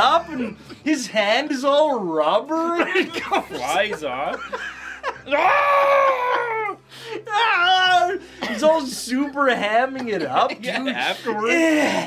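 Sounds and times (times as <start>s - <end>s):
high scream of pain: 5.3s - 6.8s.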